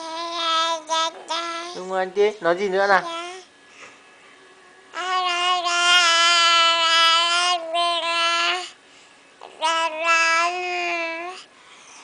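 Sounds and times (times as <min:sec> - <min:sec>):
infant cooing: 0:09.4 - 0:11.5.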